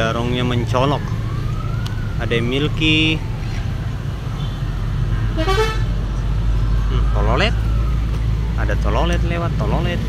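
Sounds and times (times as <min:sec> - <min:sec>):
low traffic rumble: 0:00.0 - 0:10.0
musical bus horn notes: 0:05.2 - 0:05.9.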